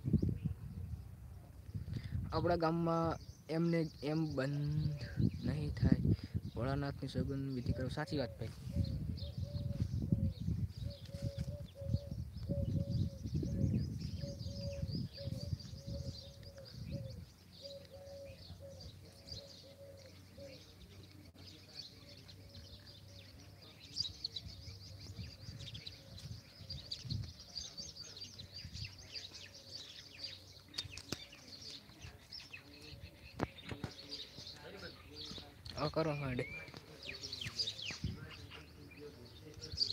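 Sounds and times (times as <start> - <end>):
low rumble on microphone: 0.0 - 2.4, 4.6 - 17.3
small birds chirping: 0.0 - 39.9.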